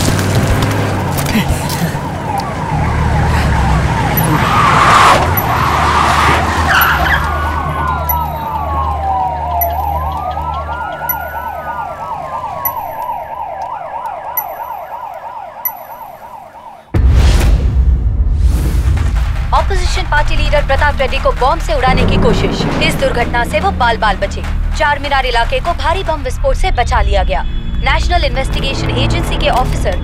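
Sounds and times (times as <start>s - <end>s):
siren wail: 1.4s - 17.0s
siren yelp: 1.7s - 17.0s.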